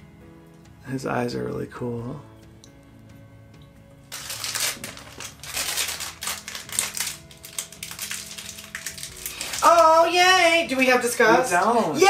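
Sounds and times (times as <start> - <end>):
faint background music: 0.0 - 12.0
packaging crinkling and tearing: 4.1 - 10.2.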